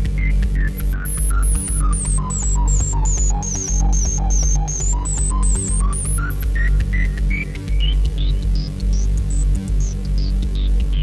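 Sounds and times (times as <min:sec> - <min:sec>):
quick synthesizer note sequence: 0:00.0 - 0:08.0
droning synthesizer bass line: 0:00.0 - 0:11.0.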